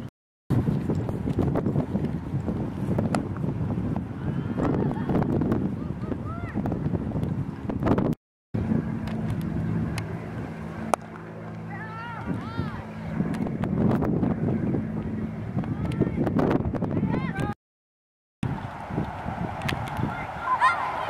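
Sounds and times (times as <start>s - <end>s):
wind buffeting microphone: 0.0s - 17.6s, 18.4s - 21.0s
distant high shouts: 18.7s - 21.0s.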